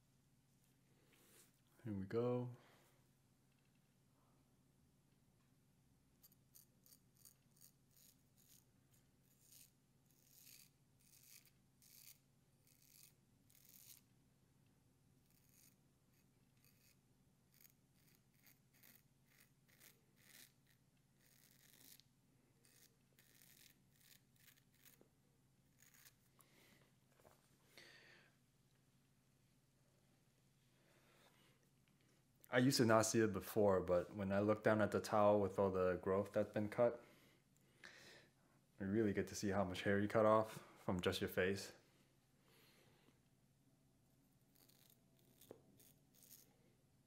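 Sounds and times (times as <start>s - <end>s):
razor scraping beard: 6.2s - 14.1s, 15.2s - 26.4s, 44.3s - 46.5s.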